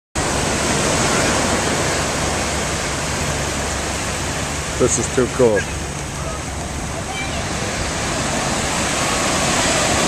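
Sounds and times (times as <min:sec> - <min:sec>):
small waves breaking on beach: 0:00.2 - 0:10.0.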